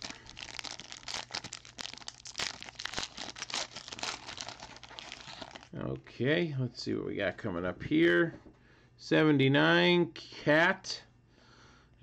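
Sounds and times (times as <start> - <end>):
foil wrapper crackling: 0.0 - 5.7.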